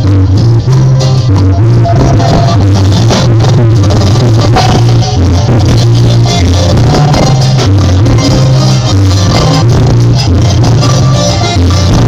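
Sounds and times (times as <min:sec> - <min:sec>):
bass line: 0:00.0 - 0:12.0
keyboards: 0:00.0 - 0:12.0
hand percussion: 0:00.9 - 0:12.0.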